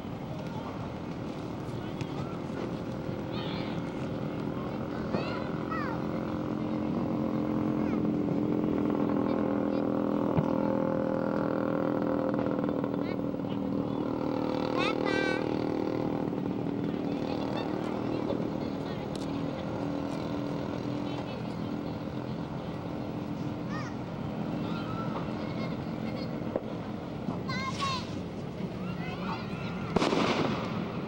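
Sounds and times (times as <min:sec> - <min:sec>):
engine drone: 0:00.0 - 0:31.0
faint voices: 0:00.0 - 0:31.0.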